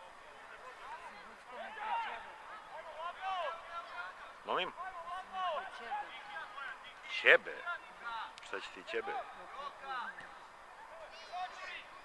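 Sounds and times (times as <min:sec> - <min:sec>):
players shouting: 0:00.5 - 0:12.0.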